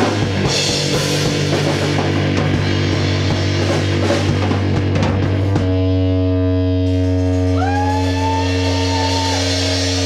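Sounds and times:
low bass drone: 0.0 - 10.0
distorted electric guitar chord: 4.6 - 10.0
high sliding guitar note: 5.6 - 10.0.

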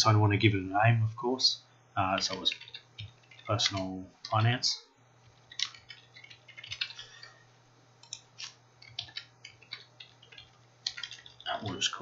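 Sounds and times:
faint low hum: 0.0 - 12.0
computer keyboard typing: 2.2 - 4.4, 5.2 - 7.4, 8.0 - 12.0.

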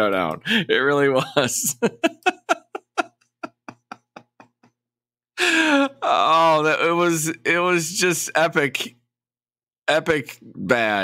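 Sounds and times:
man laughing breathily: 1.6 - 4.8, 5.4 - 6.0.

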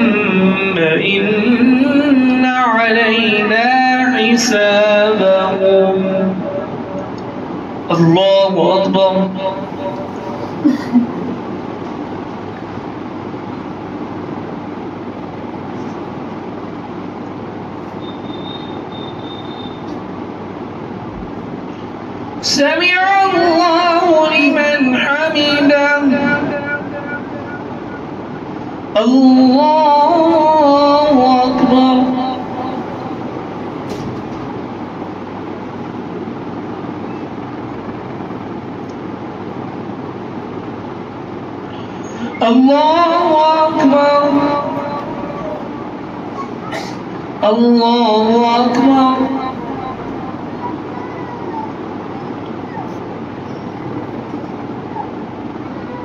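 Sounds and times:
steady room background noise: 0.0 - 56.0.

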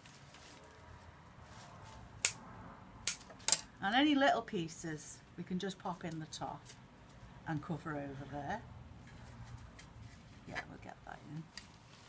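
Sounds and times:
scissors snipping stems: 2.2 - 2.4, 3.0 - 3.6.

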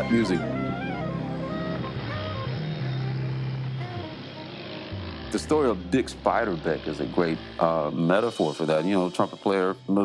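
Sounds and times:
motor scooter engines: 0.0 - 8.2
road noise: 0.0 - 8.2
soft background music: 0.0 - 10.0.

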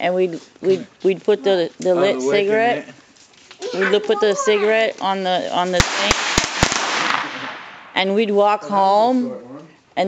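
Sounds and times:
firecrackers cracking: 3.5 - 8.0.

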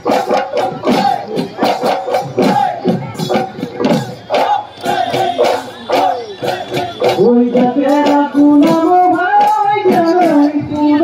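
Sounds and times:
drum beats: 0.0 - 11.0
people singing: 0.1 - 11.0
group shouts: 2.4 - 2.9, 4.3 - 6.9.

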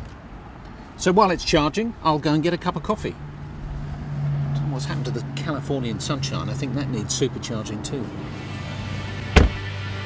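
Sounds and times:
electric window motor hum: 8.3 - 10.0
sharp thump: 9.3 - 9.7.

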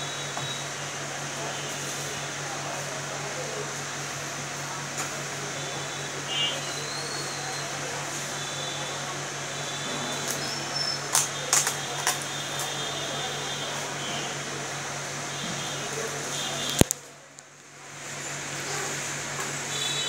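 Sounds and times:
steady machine hum: 0.0 - 16.8.

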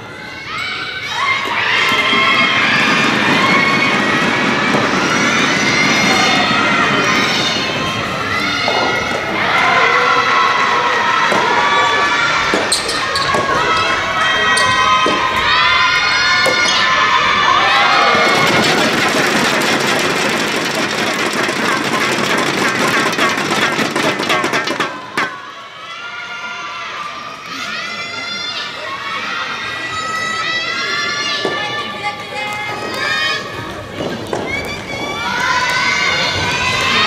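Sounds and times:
players shouting calls: 0.0 - 19.6
faint voices: 0.0 - 23.1, 24.8 - 37.0
crowd clapping and cheering: 1.5 - 25.4, 34.1 - 37.0.

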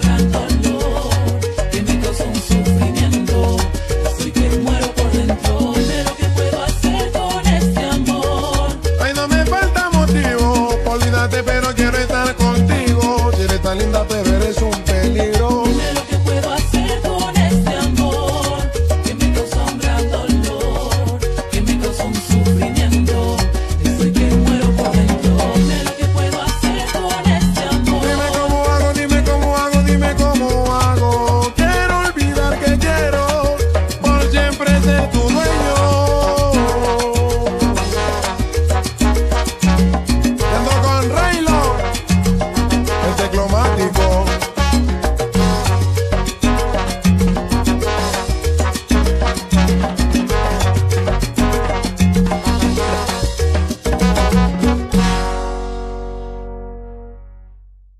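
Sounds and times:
salsa music: 0.0 - 57.7.

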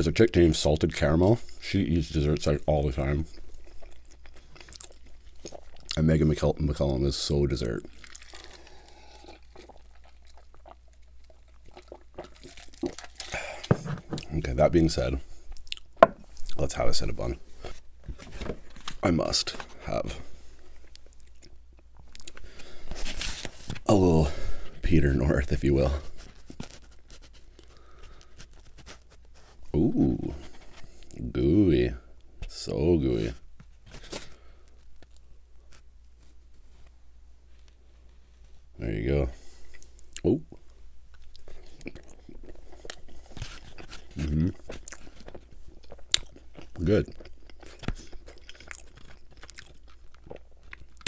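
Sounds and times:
close chewing with mouth clicks: 3.2 - 6.0, 7.8 - 14.4, 20.7 - 22.6, 39.6 - 51.0.

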